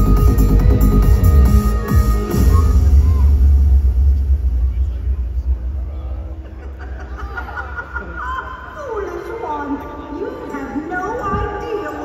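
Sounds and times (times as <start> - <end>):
deep sound system rumble: 0.0 - 8.8.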